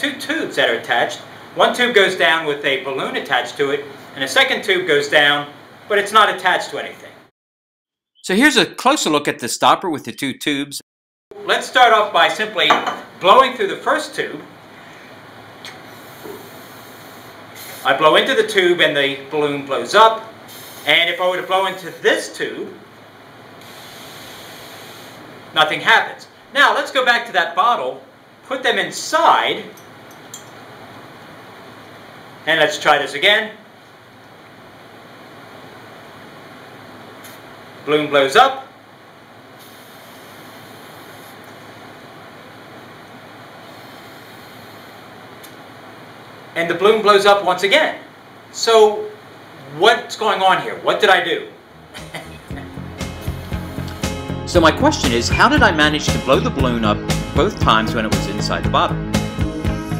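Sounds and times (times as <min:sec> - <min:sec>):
breath blowing into balloon: 0:15.9 - 0:17.9, 0:23.6 - 0:25.2, 0:52.6 - 0:54.4
quick breath: 0:53.2 - 0:54.0.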